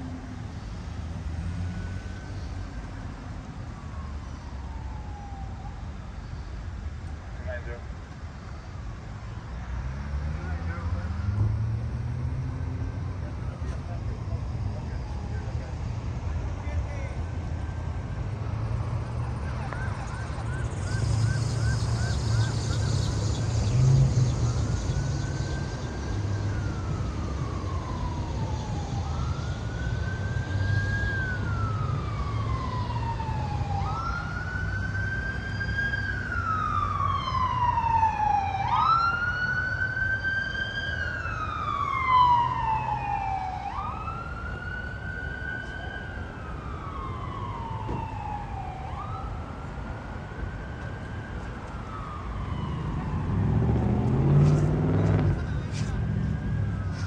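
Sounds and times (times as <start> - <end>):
siren wailing: 1.3 - 6.6, 12.6 - 16.0, 17.6 - 57.0.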